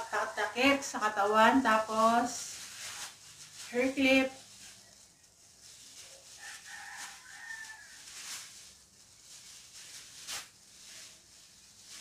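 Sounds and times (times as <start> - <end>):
plastic rustling: 0.0 - 12.0
distant rooster crowing: 6.3 - 8.4.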